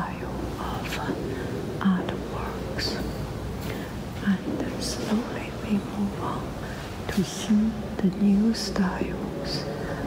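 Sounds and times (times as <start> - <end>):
room noise: 0.0 - 10.0
soft whispering: 0.0 - 10.0.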